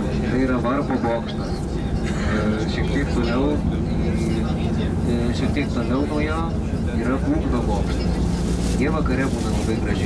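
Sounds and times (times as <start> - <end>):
people talking: 0.0 - 10.0
road traffic rumble: 0.0 - 10.0.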